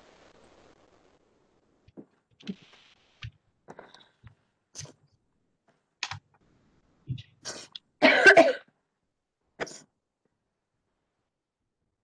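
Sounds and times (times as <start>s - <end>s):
person coughing: 7.5s - 8.7s
person clearing throat: 8.0s - 8.7s.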